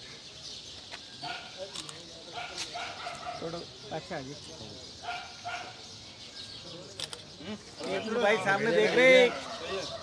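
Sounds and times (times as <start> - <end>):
dog barking: 5.0 - 5.8.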